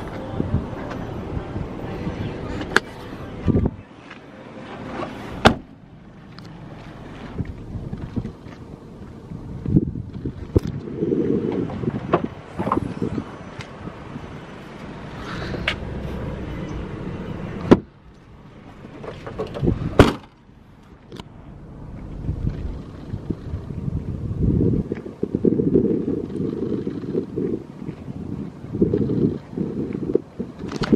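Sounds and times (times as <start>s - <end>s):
car door shutting: 4.8s - 5.7s, 17.6s - 17.9s, 18.8s - 20.4s
tailgate opening clunk: 4.9s - 5.8s, 17.6s - 17.9s, 18.8s - 20.4s.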